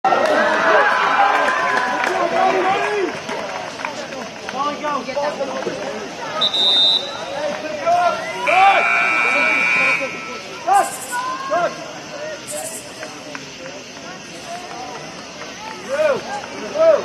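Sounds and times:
players shouting: 0.1 - 13.6, 14.2 - 17.0
whistle blast: 6.4 - 7.3, 8.1 - 11.2.

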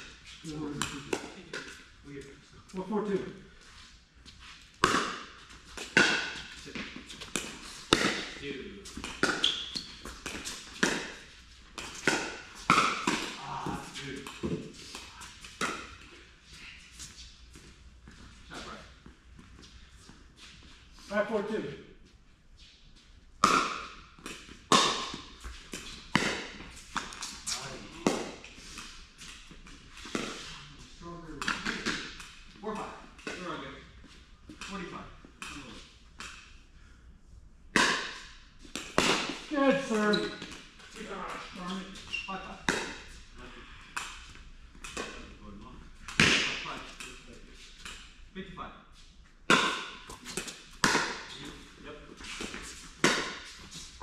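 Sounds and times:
ball bouncing on court: 4.8 - 8.4, 9.0 - 14.7, 23.4 - 27.3, 49.5 - 51.3, 52.2 - 54.0
voices: 13.3 - 15.4, 39.5 - 43.7.

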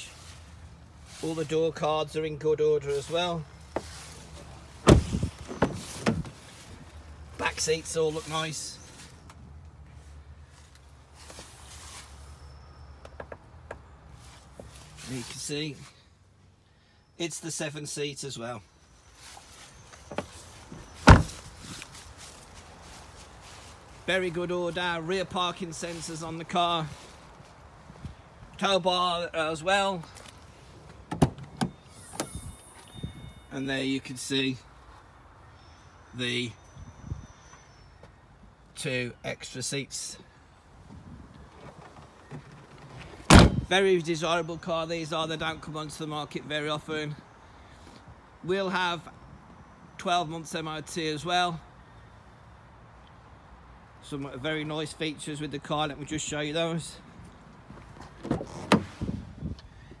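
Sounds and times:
car door handling and swinging: 4.8 - 6.4, 20.1 - 21.5, 30.9 - 32.4, 41.5 - 43.7, 57.7 - 59.2
tailgate latch clicking: 43.3 - 43.6.

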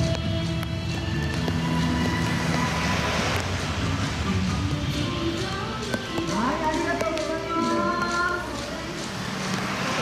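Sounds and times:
truck engine passing: 0.0 - 10.0
tyre hiss on wet road: 0.4 - 7.3, 8.0 - 10.0.

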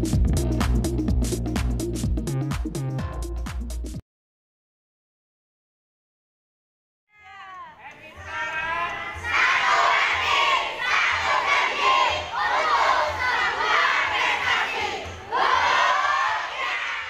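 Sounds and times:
children shouting together: 7.2 - 17.0.

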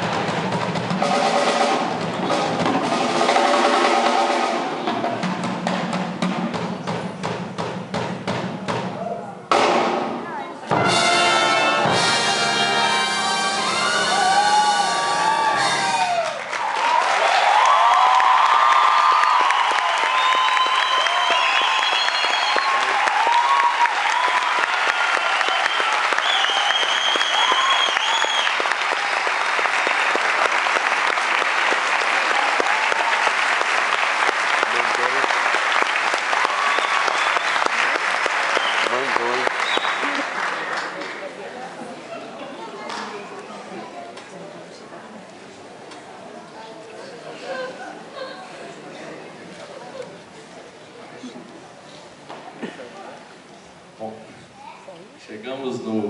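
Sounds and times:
orchestra chord: 10.7 - 15.9
audience cheering: 12.6 - 41.3
audience applause: 13.6 - 42.0.

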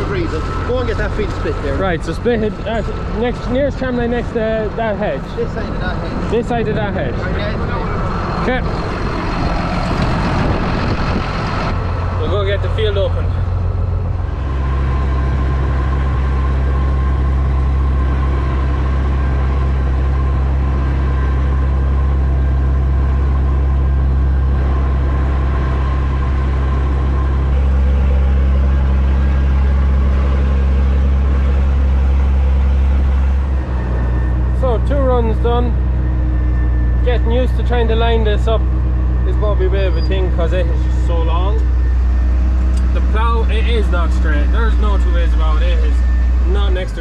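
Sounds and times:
tractor engine under load: 0.0 - 47.0.

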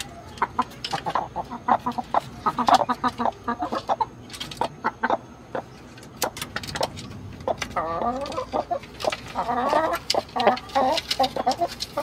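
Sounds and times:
hens clucking: 0.0 - 12.0.

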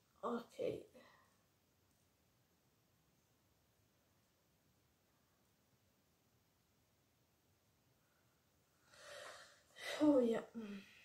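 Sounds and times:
woman speaking: 0.2 - 1.1, 9.8 - 10.9
woman breathing in: 8.8 - 9.8.

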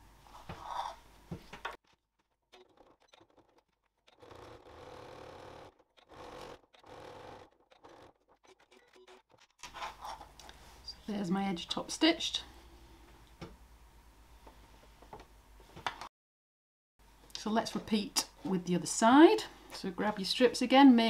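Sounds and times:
electric sewing machine running: 4.1 - 9.0.

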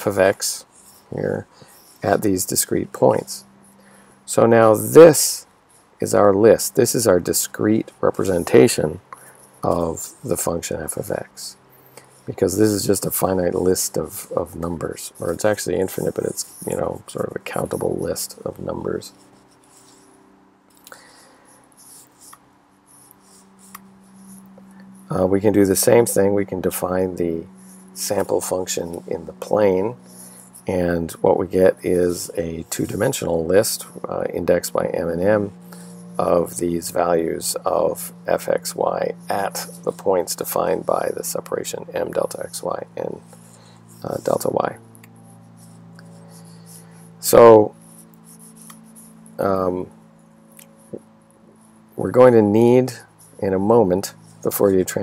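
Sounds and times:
low hum: 0.0 - 55.0
scratching and rubbing at desk: 15.0 - 18.4, 19.0 - 20.2, 21.7 - 24.6, 45.2 - 49.3.

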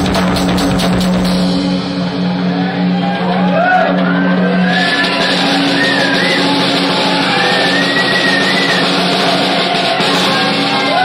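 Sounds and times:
drum kit and cymbals: 0.0 - 3.6, 4.4 - 11.0
high lead guitar bending: 0.0 - 11.0
low bass notes: 0.0 - 11.0.

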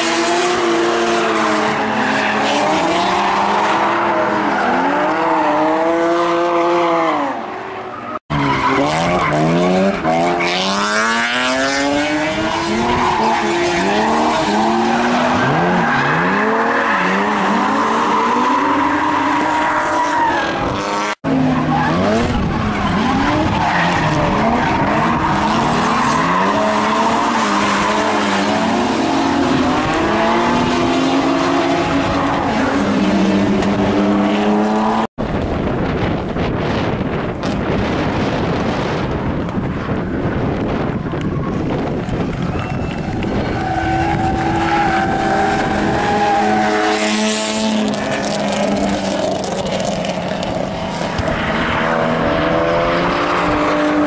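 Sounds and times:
car engine revving: 8.2 - 19.1.

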